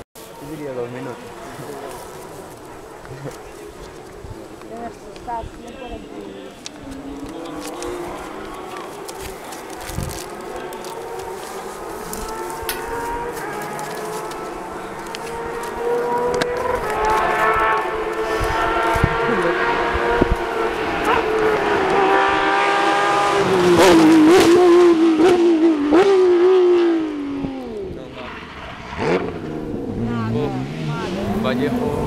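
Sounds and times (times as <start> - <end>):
rally car engine passing by: 10.2 - 32.0.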